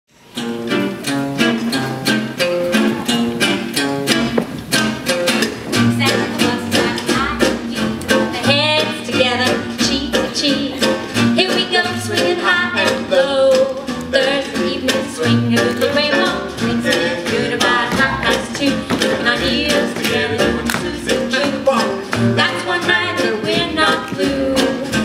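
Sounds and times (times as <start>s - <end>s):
swing band playing: 0.2s - 25.0s.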